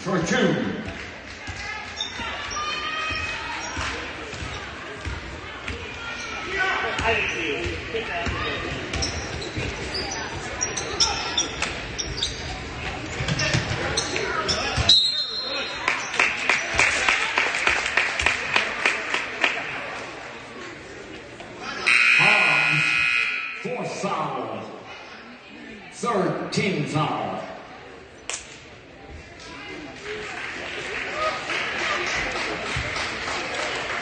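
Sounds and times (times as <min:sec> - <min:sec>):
voices of players and spectators: 0:00.0 - 0:34.0
sneaker squeaks: 0:01.9 - 0:04.8, 0:07.0 - 0:16.3.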